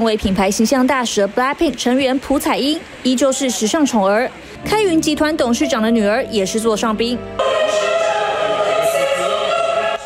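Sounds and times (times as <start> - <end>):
choir singing a long chord: 7.2 - 10.0.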